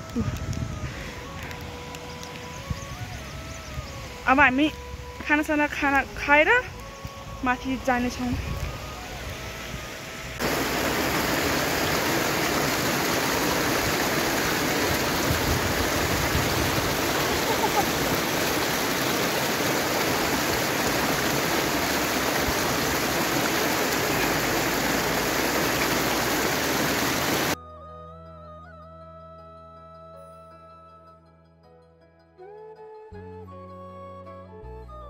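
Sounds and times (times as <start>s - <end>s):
stream splashing over rocks: 10.3s - 27.6s.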